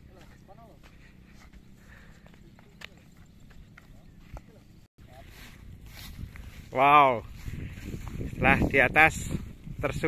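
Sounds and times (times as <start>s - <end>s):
flip-flop footsteps on dirt: 0.0s - 8.5s
wind rumble on microphone: 5.3s - 10.0s.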